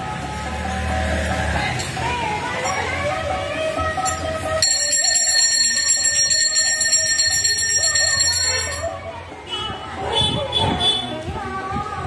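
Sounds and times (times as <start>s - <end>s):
music: 0.0s - 5.7s, 7.2s - 12.0s
temple bell ringing: 4.6s - 9.0s.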